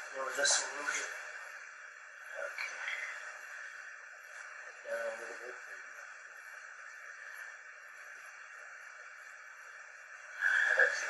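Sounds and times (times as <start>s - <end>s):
faint recording hiss: 0.0s - 11.0s
man speaking: 4.8s - 5.8s.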